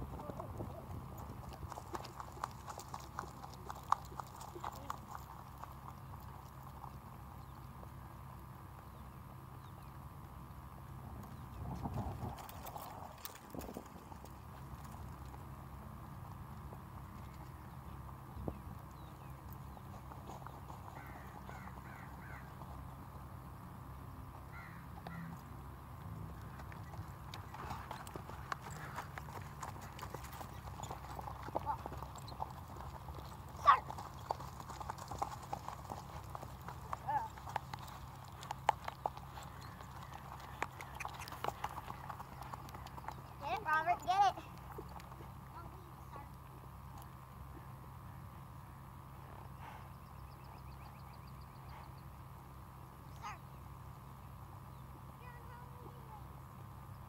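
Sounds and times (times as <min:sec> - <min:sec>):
horse hoofbeats on grass: 0:00.0 - 0:47.7
steady low hum: 0:00.0 - 0:57.0.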